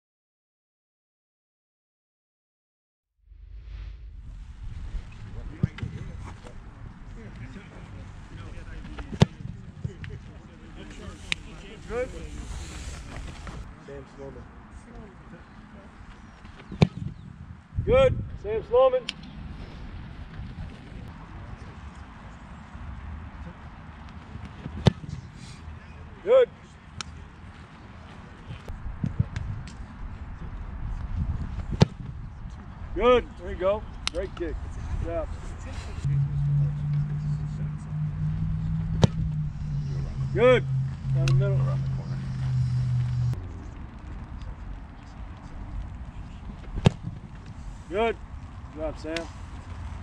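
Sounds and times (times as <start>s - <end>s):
low wind rumble on microphone: 3.3s - 13.8s, 16.2s - 23.3s, 27.9s - 33.0s, 33.9s - 50.0s
football kick thud: 16.7s - 17.1s, 39.0s - 39.3s
foot kicking football thud: 16.8s - 17.1s.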